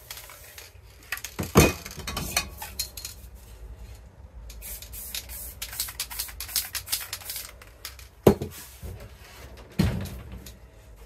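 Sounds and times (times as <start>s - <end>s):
spray paint can hissing: 4.5s - 7.6s.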